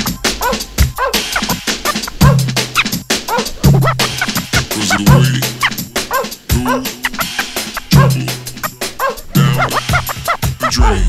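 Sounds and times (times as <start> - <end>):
hip-hop beat: 0.0 - 11.0
vinyl scratching on turntable: 0.0 - 11.0.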